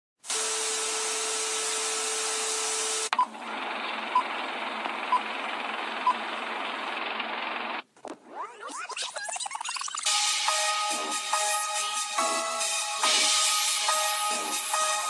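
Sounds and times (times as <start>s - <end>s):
static hiss: 0.2s - 3.1s.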